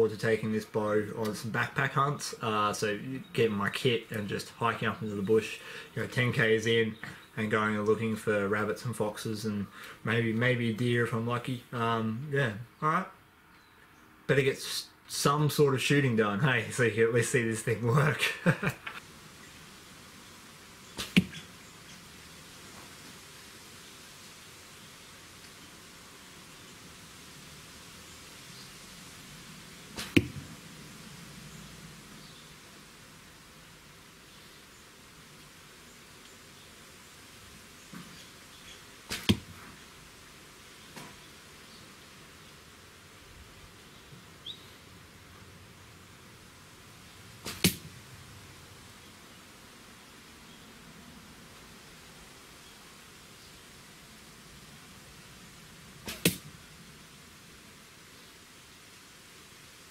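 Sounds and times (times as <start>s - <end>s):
arrows hitting foam target: 21.0s - 21.4s, 30.0s - 30.5s, 39.1s - 39.6s, 47.4s - 48.0s, 56.1s - 56.5s
faint sound before arrow hit: 21.0s - 21.4s, 30.0s - 30.5s, 47.4s - 47.9s, 56.1s - 56.5s.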